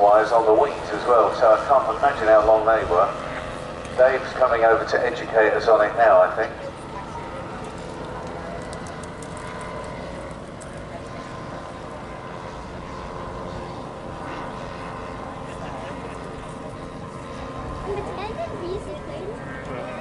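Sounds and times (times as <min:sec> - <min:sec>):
model aircraft engines droning: 0:00.0 - 0:20.0.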